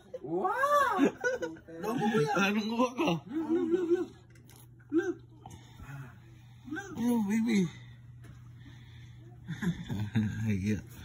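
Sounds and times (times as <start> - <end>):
laughter: 0.0 - 2.2, 3.3 - 4.2, 9.4 - 10.5.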